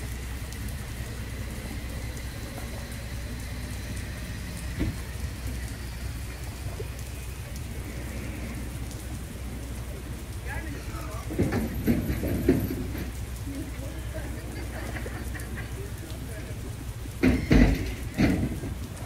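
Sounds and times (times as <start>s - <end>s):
low hum: 0.0s - 19.0s
water lapping against pier posts: 0.0s - 19.0s.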